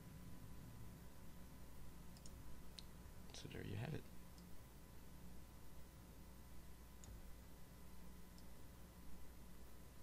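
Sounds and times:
computer mouse clicks: 2.1 - 2.9, 7.0 - 7.2, 8.3 - 8.6.

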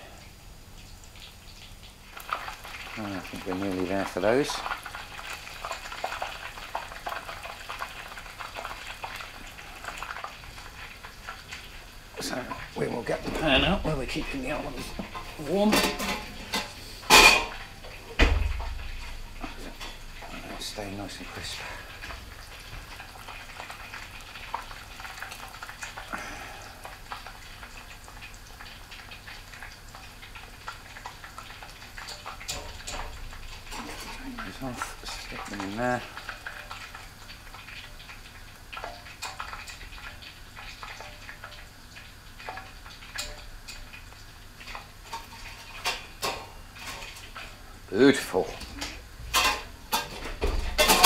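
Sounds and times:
fish sizzling in hot oil: 0.0 - 51.0.

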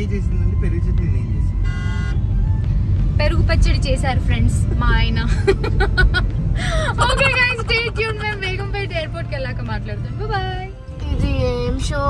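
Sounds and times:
car engine rumble: 0.0 - 12.0
road noise: 0.0 - 12.0
car horn toot: 1.6 - 2.2.

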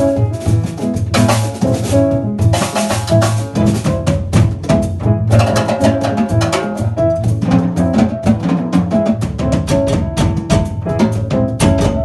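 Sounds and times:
drum kit and cajon rhythm: 0.0 - 12.0
piano: 0.0 - 12.0
upright double bass: 0.0 - 12.0.

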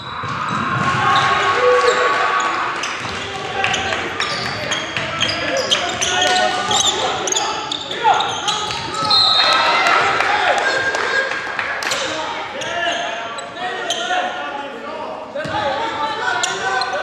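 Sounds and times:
echoing indistinct voices: 0.0 - 17.0
shoe squeaks: 2.8 - 9.6, 12.6 - 14.3.

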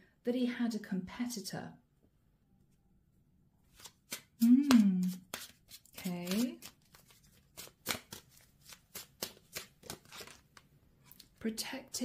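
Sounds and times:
cards being shuffled: 3.7 - 11.3.

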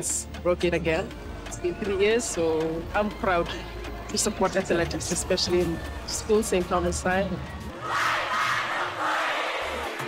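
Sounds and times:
crowd shouting and cheering: 7.6 - 10.0.

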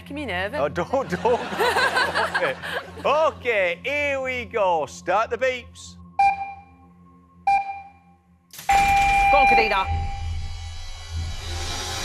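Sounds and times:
electronic countdown beeps: 6.0 - 10.5.

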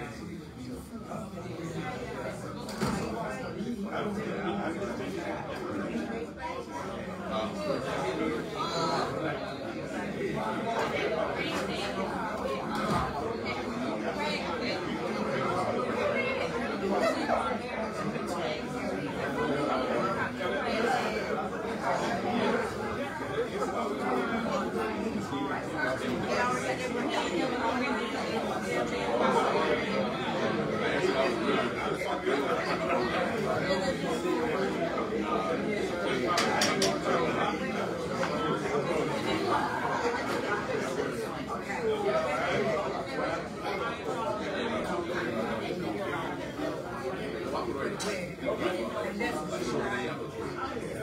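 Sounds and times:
crowd chatter in a hall: 0.0 - 51.0
hubbub of overlapping conversations: 0.0 - 51.0.

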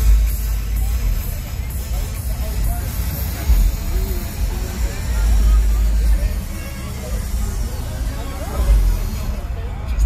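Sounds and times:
loud bass-heavy music: 0.0 - 10.0
voices: 0.0 - 10.0.

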